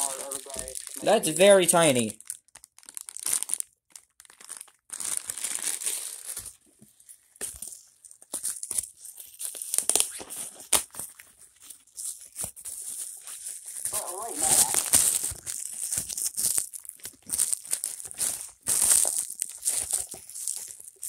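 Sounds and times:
plastic bag crinkling: 0.0s - 6.6s, 11.8s - 21.0s.

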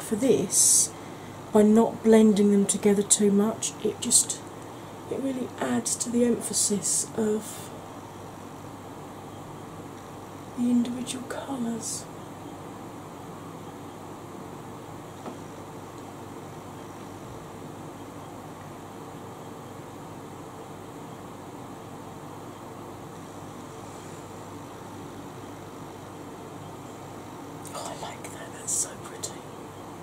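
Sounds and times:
electric fan hiss: 0.0s - 30.0s
faint steady hum: 0.0s - 30.0s.

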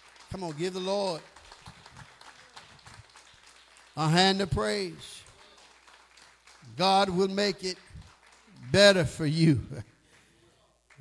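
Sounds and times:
faint scattered applause: 0.0s - 11.0s.

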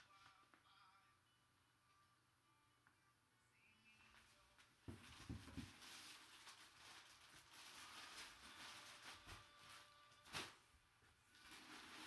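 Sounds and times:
fabric bag rustling: 5.0s - 10.6s, 11.3s - 12.0s
packing paper crinkling: 5.0s - 10.6s, 11.3s - 12.0s.

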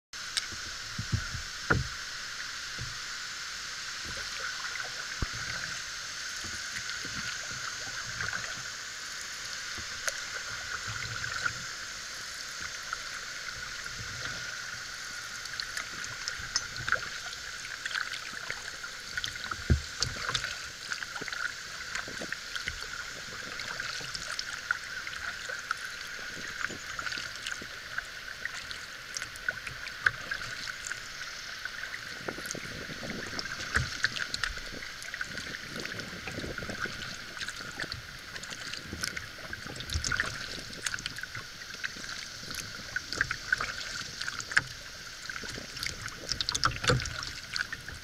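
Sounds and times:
hiss of water: 0.2s - 48.0s
paddle splashes and drips: 0.2s - 48.0s
dull low thump: 0.9s - 2.0s.

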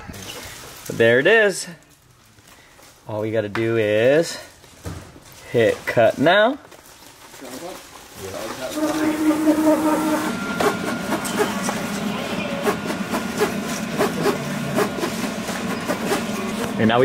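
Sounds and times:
motors whining: 8.6s - 17.0s.

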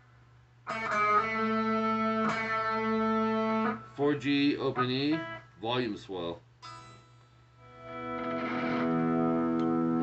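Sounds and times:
electric guitar chord ringing: 0.7s - 4.0s, 6.6s - 10.0s.

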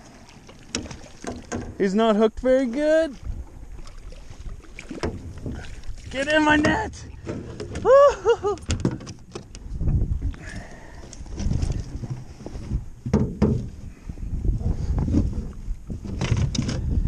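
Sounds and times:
net and fish knocking against boat: 0.6s - 1.8s, 4.8s - 5.7s, 13.0s - 13.7s
microphone handling rumble: 4.5s - 17.0s.

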